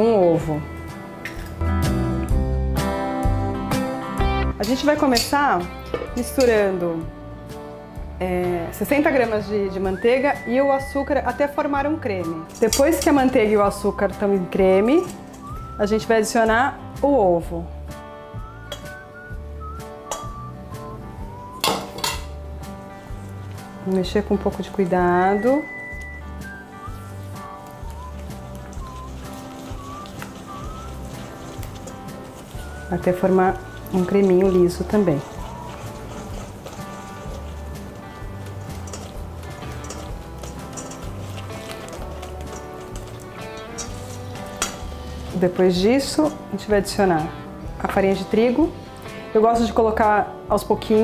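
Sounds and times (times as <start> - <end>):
background music with whistling: 9.4 - 17.2, 17.8 - 49.3
bowl clatter: 21.6 - 22.3, 27.9 - 45.4
spatula scraping metal bowl: 26.8 - 46.4.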